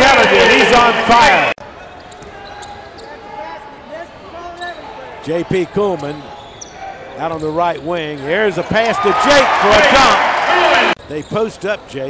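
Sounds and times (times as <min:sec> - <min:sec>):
shoe squeaks: 0:02.0 - 0:03.4, 0:04.4 - 0:05.0, 0:05.9 - 0:08.4.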